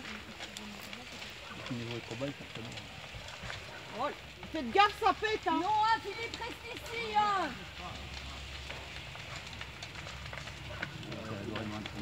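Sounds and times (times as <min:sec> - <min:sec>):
fire crackling: 0:00.0 - 0:12.0
sharp pops and cracks from fire: 0:00.0 - 0:12.0.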